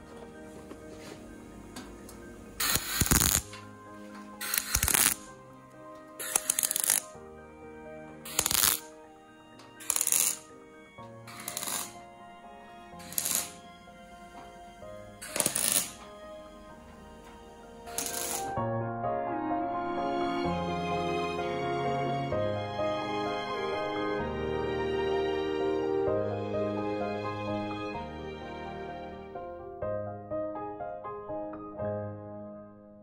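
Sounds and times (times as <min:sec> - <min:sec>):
background music: 0:00.0 - 0:33.0
power tool grinding sheet metal: 0:09.8 - 0:10.5, 0:11.3 - 0:12.0, 0:13.0 - 0:13.6, 0:15.2 - 0:16.1, 0:17.9 - 0:18.6.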